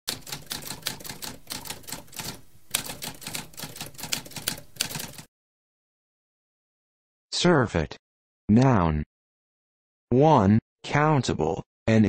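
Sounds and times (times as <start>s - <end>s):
typewriter keystroke clicks: 0.1s - 5.3s.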